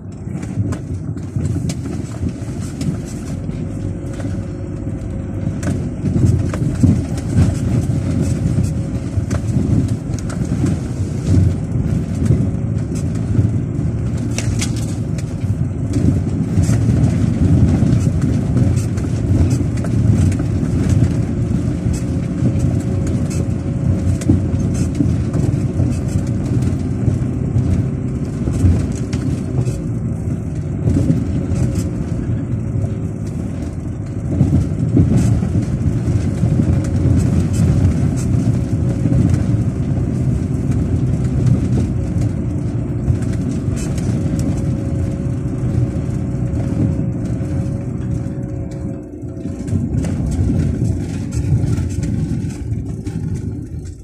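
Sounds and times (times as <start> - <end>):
knocks and rattles: 0.0 - 54.0
tyres rolling on dirt track: 0.0 - 54.0
vehicle engine running: 0.0 - 54.0.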